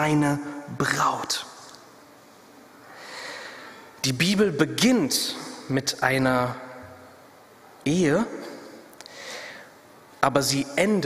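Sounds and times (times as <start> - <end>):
man breathing in softly: 2.8 - 4.0, 9.0 - 9.8.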